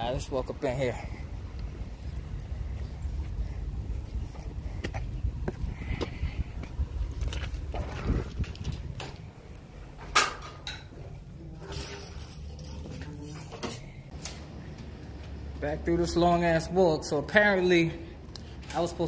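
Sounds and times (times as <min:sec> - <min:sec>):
footsteps: 0:01.0 - 0:10.1
wind rumble on microphone: 0:01.3 - 0:09.5.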